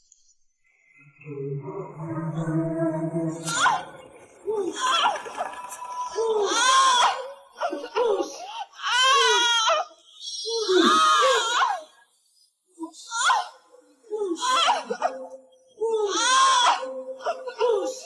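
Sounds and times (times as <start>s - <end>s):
woman wailing and crying out: 3.4s - 8.2s.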